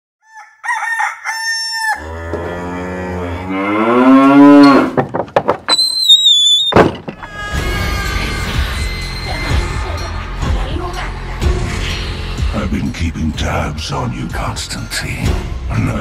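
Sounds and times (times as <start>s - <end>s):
clucking and crowing calls: 0.2s - 2.8s
cow moo: 1.9s - 5.0s
high whistled tone: 5.7s - 6.8s
music: 7.2s - 16.0s.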